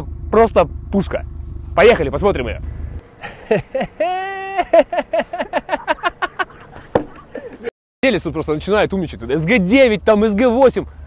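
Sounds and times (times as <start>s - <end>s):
person giving long call: 3.2s - 7.7s
person laughing rapidly: 3.2s - 7.7s.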